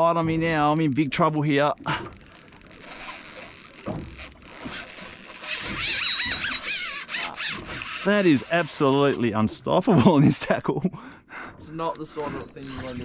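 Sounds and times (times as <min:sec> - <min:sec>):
fishing reel drag squealing: 0:02.3 - 0:09.2.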